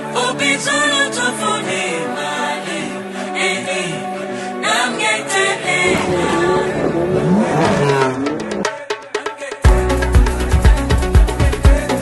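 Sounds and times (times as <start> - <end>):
car engine revving: 5.3 - 8.8.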